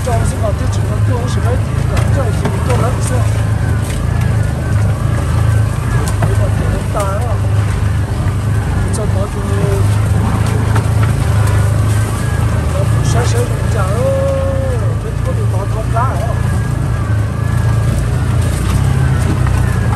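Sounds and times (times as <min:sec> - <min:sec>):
vehicle engine droning: 0:00.0 - 0:19.9.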